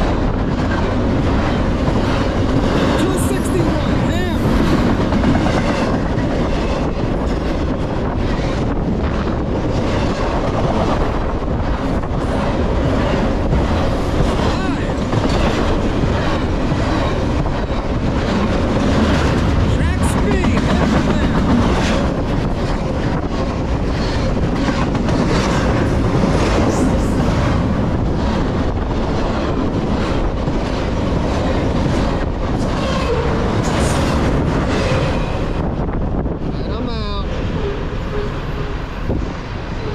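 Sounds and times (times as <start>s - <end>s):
freight train rumbling past: 0.0s - 39.9s.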